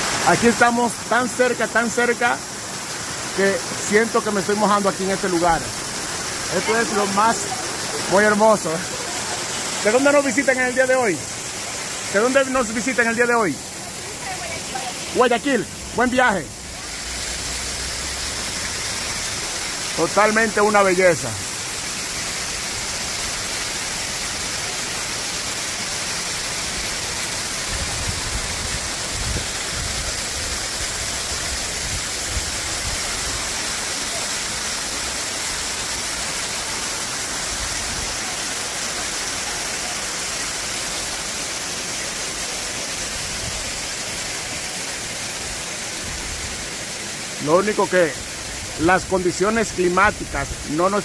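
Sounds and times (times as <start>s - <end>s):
waterfall rushing and splashing: 0.0s - 51.0s.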